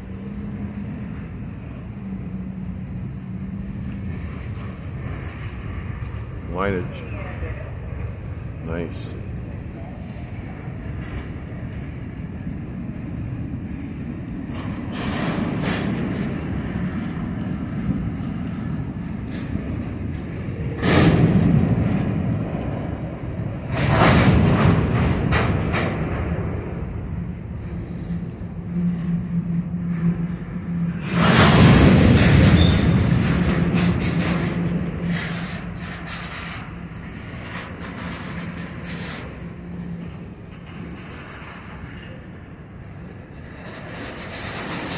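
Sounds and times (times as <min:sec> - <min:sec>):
freight wheels rumbling on rail: 0:00.0 - 0:44.9
train cars clattering and clanking: 0:00.0 - 0:44.9.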